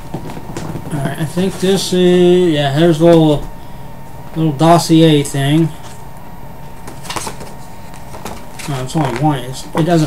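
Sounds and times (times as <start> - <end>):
paper crinkling: 6.8 - 9.9
paper rustling: 6.8 - 9.9.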